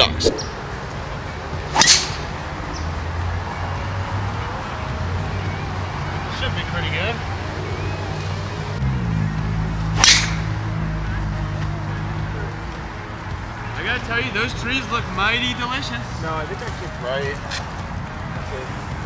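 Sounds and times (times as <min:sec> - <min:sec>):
background music: 0:00.0 - 0:19.0
golf driver striking ball: 0:01.7 - 0:02.3, 0:10.0 - 0:10.5.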